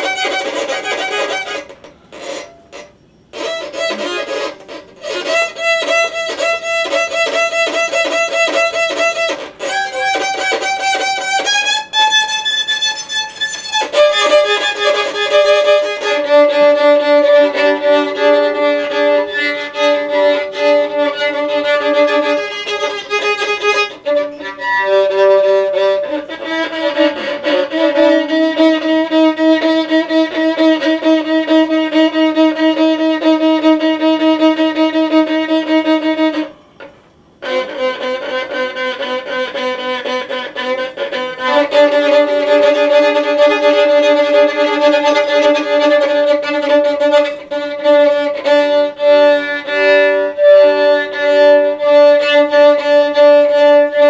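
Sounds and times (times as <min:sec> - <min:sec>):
violin bowed long notes: 0:00.0 - 0:54.0.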